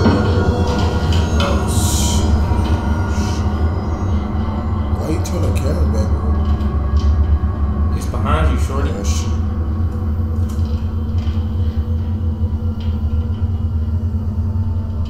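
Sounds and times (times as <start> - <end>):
low rumbling drone: 0.0 - 15.0.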